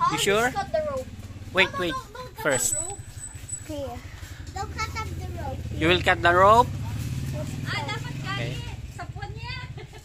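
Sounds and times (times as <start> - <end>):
people talking: 7.3 - 9.8.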